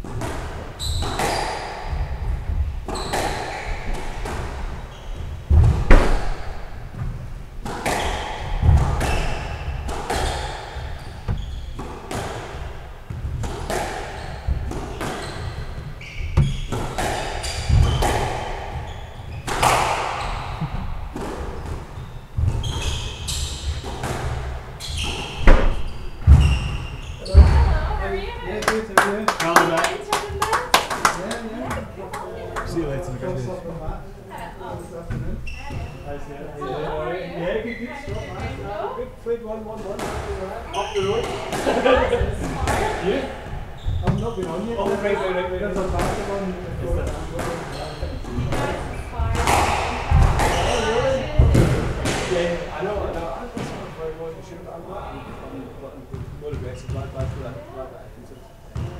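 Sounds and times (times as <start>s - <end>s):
squash ball hitting rackets and walls: 0.0s - 28.0s, 39.8s - 53.0s
shoe squeaks on wooden floor: 0.7s - 28.4s, 35.1s - 37.0s, 37.7s - 38.9s, 40.2s - 45.3s, 45.9s - 51.7s.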